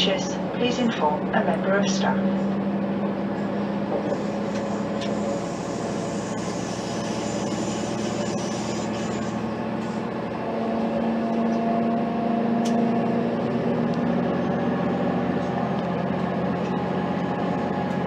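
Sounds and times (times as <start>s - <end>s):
diesel engine droning: 0.0s - 18.0s
train wheels rumbling on rails: 0.0s - 18.0s.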